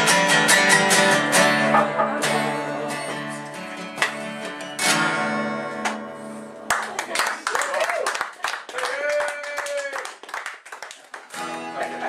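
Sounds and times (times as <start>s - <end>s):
audience clapping: 6.6s - 12.0s.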